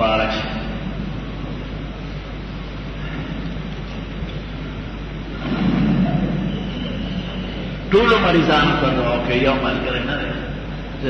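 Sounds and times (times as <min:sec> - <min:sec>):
steady hiss and low hum: 0:00.0 - 0:11.0.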